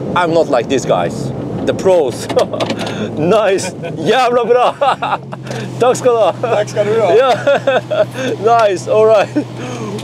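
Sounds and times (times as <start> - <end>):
car engine hum: 0.0 - 10.0
people laughing and talking: 2.2 - 9.6.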